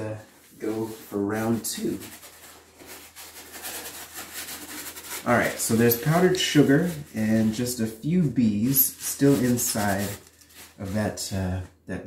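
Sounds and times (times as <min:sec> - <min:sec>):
paper towel crumpling and rubbing: 0:00.0 - 0:11.6.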